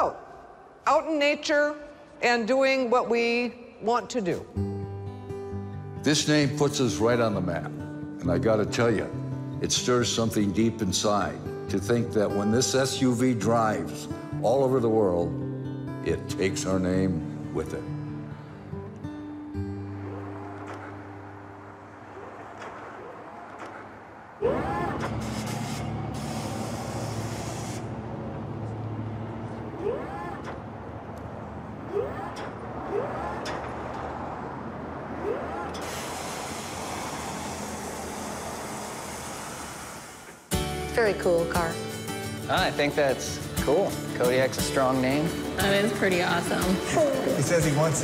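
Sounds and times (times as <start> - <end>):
wind or traffic noise: 18.1 - 40.5
short rising calls: 19.8 - 30.8, 31.7 - 40.5.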